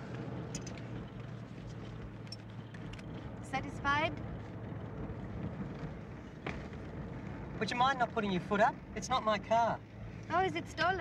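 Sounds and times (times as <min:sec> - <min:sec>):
car engine and road noise: 0:00.0 - 0:11.0.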